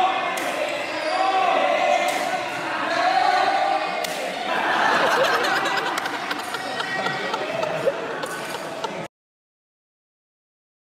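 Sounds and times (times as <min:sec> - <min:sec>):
murmur of spectators: 0:00.0 - 0:09.1.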